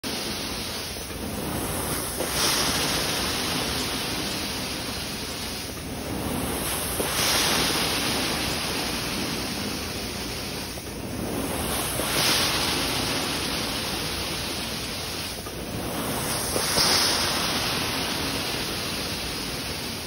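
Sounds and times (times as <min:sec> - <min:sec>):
carpet extraction wand suction hiss: 0:14.8 - 0:19.4.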